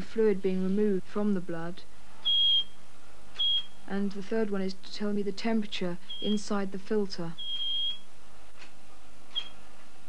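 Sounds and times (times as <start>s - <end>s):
high-pitched alarm beeps: 2.2s - 2.8s, 3.4s - 3.8s, 6.0s - 6.4s, 7.4s - 8.1s.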